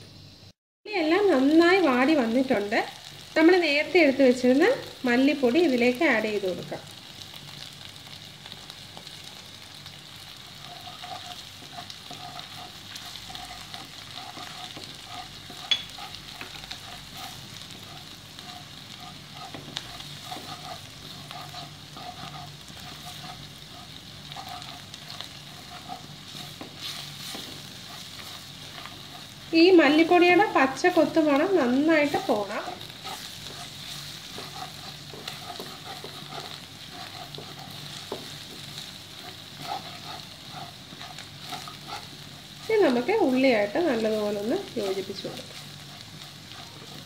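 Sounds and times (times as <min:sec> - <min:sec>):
onions sizzling in a wok: 0:00.0 - 0:47.0
wooden spatula scraping: 0:08.6 - 0:47.0.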